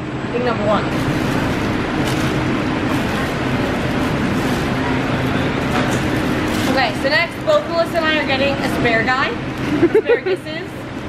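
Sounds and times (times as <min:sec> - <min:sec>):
low hum: 0:00.0 - 0:10.1.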